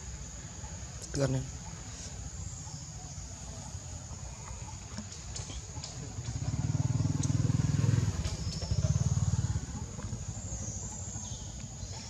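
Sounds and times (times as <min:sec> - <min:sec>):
low pulsing engine rumble: 0:02.3 - 0:12.0.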